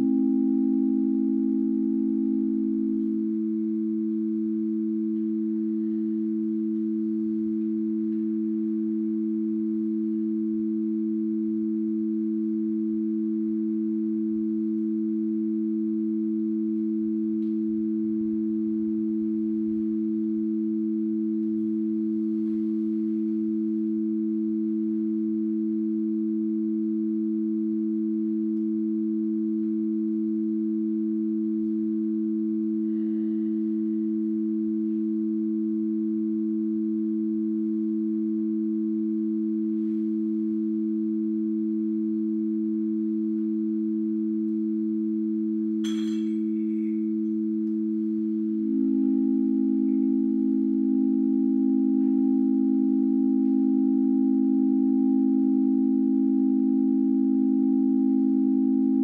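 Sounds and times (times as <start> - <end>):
faint higher tone: 0.0 - 59.0.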